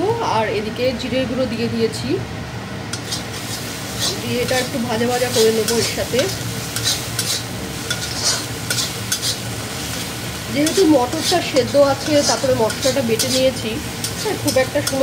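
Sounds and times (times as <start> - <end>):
spice paste sizzling: 2.8 - 15.0
metal spatula scraping pan: 3.0 - 15.0.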